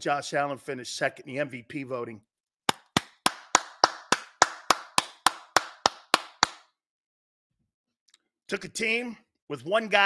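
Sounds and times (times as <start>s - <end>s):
man clapping hands: 2.7s - 6.7s.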